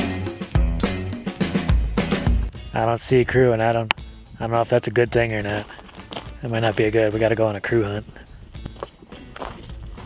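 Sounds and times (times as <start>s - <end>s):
background music: 0.0s - 10.0s
footsteps on gravel: 4.5s - 10.0s.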